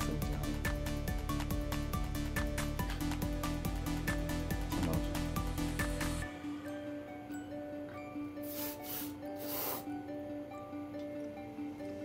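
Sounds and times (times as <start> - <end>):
background music: 0.0 - 12.0
insecticide spray hisses: 8.4 - 9.9.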